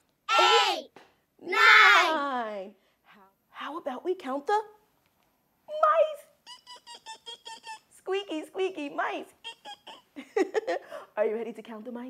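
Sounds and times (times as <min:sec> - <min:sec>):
woman imitating mouse squeaks: 0:06.2 - 0:08.0, 0:09.2 - 0:10.1.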